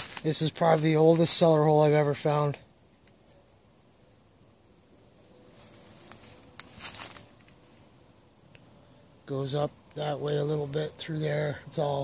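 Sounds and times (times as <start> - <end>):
footsteps through undergrowth: 0.0 - 1.5, 5.5 - 7.9.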